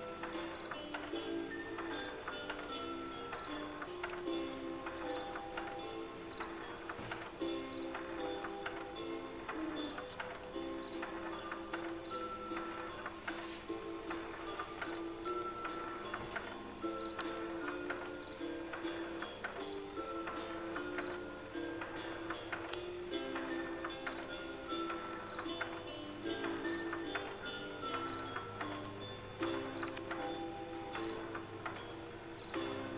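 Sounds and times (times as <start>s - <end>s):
chirping crickets: 0.0s - 32.9s
electronic lullaby melody: 0.0s - 32.9s.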